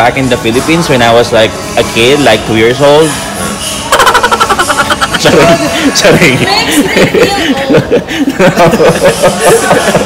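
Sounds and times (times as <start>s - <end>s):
person laughing hard: 3.9s - 5.9s, 6.7s - 10.0s.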